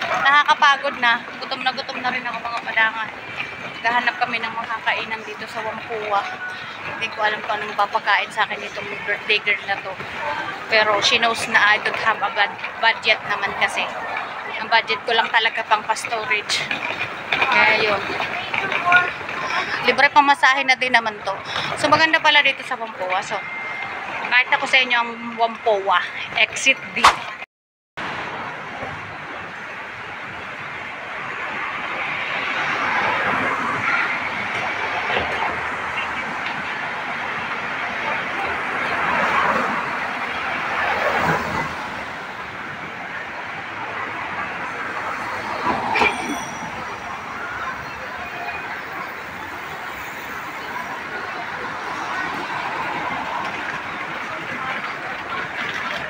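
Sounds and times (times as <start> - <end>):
city street traffic noise: 0.0 - 56.0.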